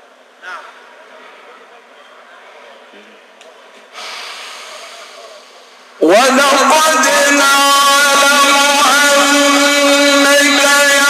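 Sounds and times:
man reciting melodically through microphone: 6.0 - 11.0.

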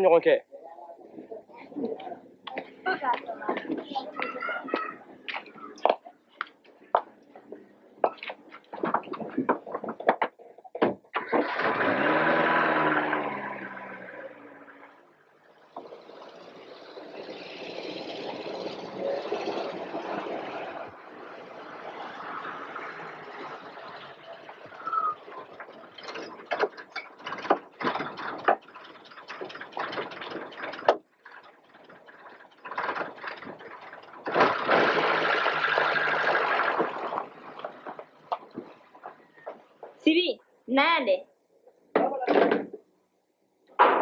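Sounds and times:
car driving over dirt: 11.2 - 39.4
sharp clicks and knocks: 25.5 - 34.8.

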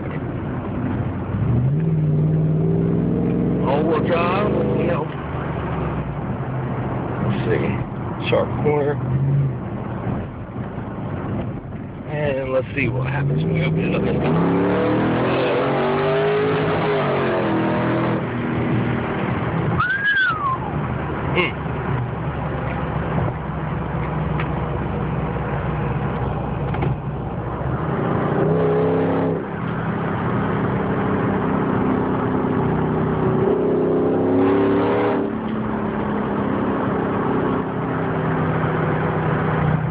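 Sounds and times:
car engine rumbling: 0.0 - 39.9
road noise: 0.0 - 39.9.

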